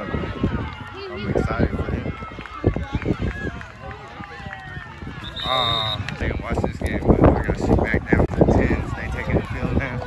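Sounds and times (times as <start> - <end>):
spectators chattering and shouting: 0.0 - 10.0.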